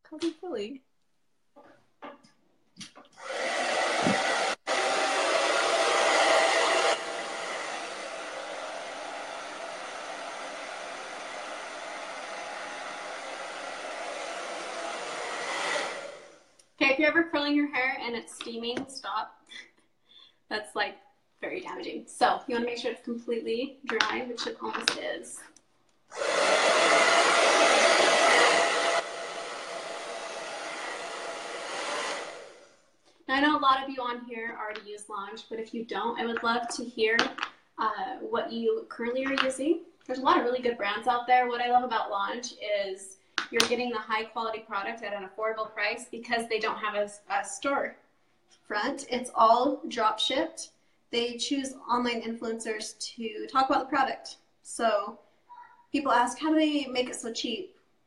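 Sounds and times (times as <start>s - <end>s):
hair dryer running: 3.1s - 16.6s, 26.1s - 32.9s.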